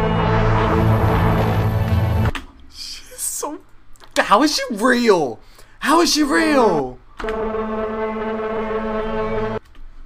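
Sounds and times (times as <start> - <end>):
horn-like held drone: 0.0 - 2.3, 7.2 - 9.6.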